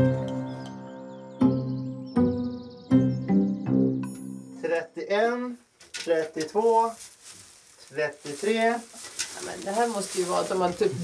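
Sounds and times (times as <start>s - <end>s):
music: 0.0s - 4.7s
person speaking: 4.6s - 7.1s, 7.8s - 11.0s.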